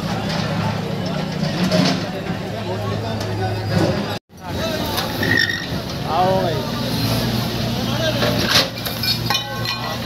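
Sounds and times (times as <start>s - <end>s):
diesel engine humming: 0.0s - 9.2s
crowd voices and calls: 0.0s - 10.0s.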